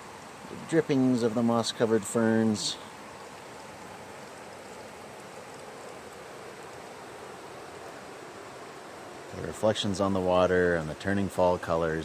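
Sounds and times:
water trickling over rocks: 0.0 - 12.0.

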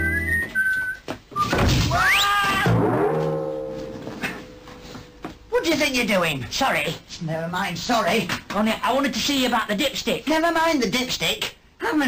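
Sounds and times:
whistle-like tune: 0.0 - 2.3.

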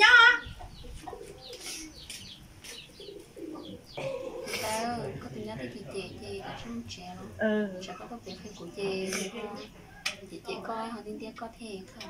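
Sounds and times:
birds chirping: 0.0 - 12.0
faint low cooing: 3.3 - 5.0.

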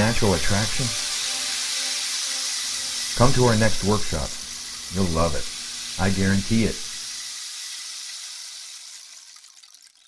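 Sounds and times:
high rushing hiss: 0.0 - 9.2.

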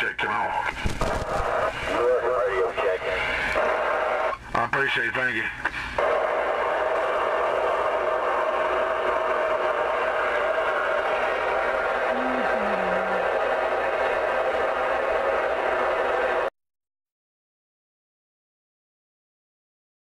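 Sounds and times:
radio static hiss: 0.0 - 14.8.

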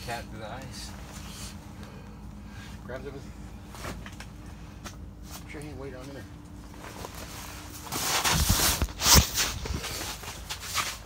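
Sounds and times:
clothing rustling: 6.6 - 11.0.

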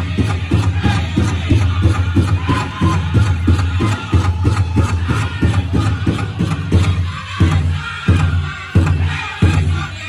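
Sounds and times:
big drum steady beat: 0.0 - 10.0
voices chanting: 0.0 - 10.0.

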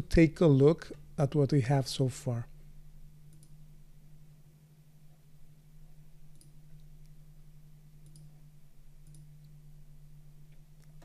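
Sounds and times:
low electrical hum: 0.0 - 11.0
computer mouse clicks: 3.3 - 3.6, 8.0 - 8.3, 9.0 - 9.5.

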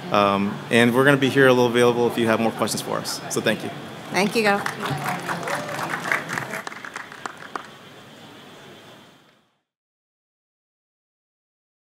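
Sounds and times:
audience applauding: 4.2 - 7.9.

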